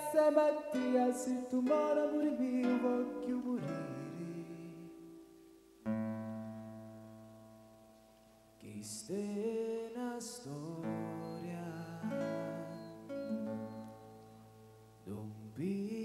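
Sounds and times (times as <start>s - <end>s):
man singing: 0.0s - 5.2s, 8.6s - 13.1s, 15.1s - 16.0s
classical guitar chords: 0.0s - 16.0s.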